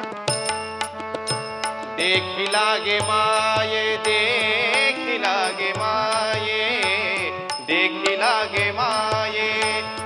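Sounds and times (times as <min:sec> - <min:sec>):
person singing ornamented phrases: 0:02.0 - 0:10.0.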